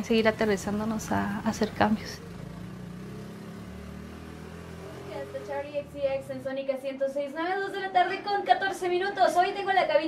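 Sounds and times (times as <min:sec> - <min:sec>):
small vehicle engine humming: 0:00.0 - 0:07.0.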